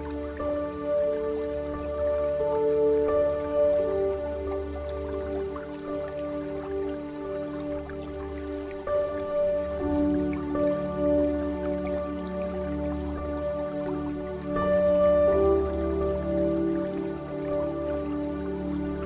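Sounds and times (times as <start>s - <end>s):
ambient synth music with drone: 0.0s - 19.0s
dripping water: 0.0s - 19.0s.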